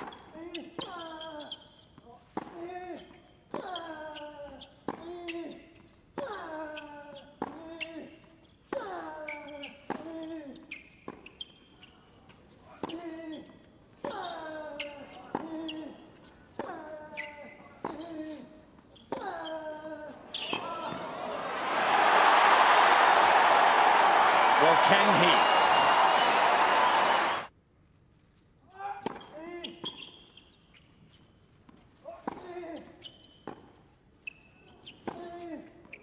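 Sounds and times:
crowd cheering and applauding: 0:20.6 - 0:27.5.

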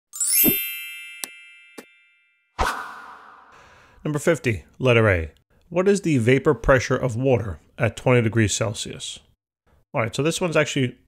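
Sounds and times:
bright ringing ding with sweep: 0:00.2 - 0:02.6.

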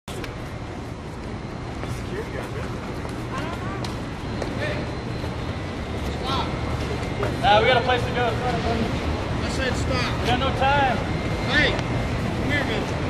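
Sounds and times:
people talking in background: 0:01.6 - 0:13.0.

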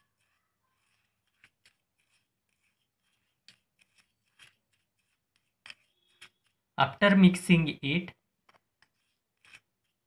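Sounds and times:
spoon scraping in a bowl: 0:00.0 - 0:06.6, 0:08.8 - 0:10.0.

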